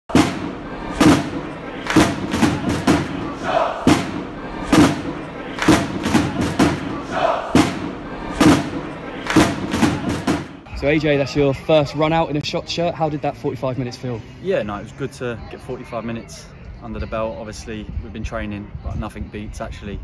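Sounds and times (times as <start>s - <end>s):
heavy thudding beat: 0.0s - 10.7s
crowd noise: 0.0s - 19.9s
shouted chant calls: 0.7s - 10.5s.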